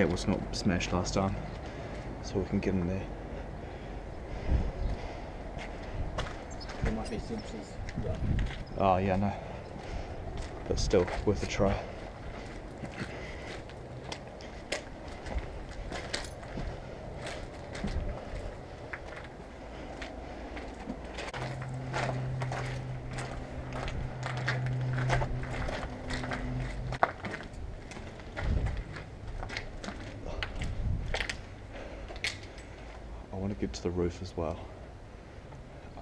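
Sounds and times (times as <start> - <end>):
steady low hum: 0.0 - 36.0
low rumble: 3.0 - 33.3
footsteps crunching on gritty concrete: 7.8 - 33.0.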